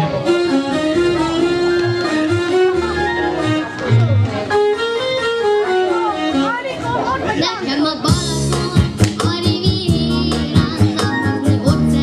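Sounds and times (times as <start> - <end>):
amplified stage music: 0.0 - 12.0
people talking: 5.7 - 12.0.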